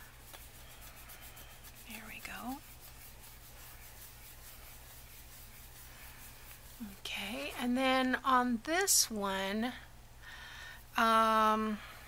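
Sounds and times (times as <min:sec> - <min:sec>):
fingers rubbing paper: 0:00.0 - 0:07.7.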